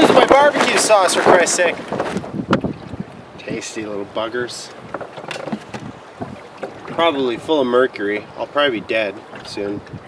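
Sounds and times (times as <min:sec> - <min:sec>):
water moving around boat: 0:00.0 - 0:10.0
wind buffeting microphone: 0:00.0 - 0:10.0
light clicks and knocks: 0:04.9 - 0:07.0.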